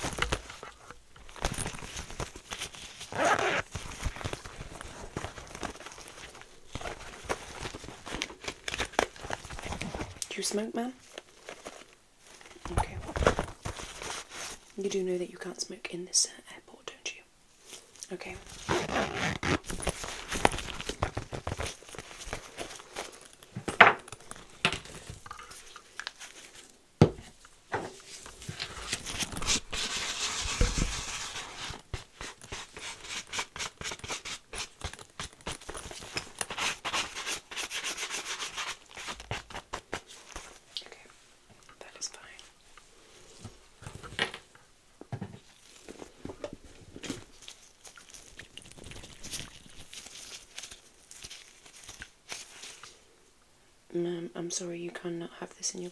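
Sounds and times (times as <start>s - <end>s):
rustling of zippered pouch: 0.0s - 10.2s, 11.0s - 14.8s, 17.6s - 26.8s, 28.0s - 40.8s, 45.4s - 53.0s.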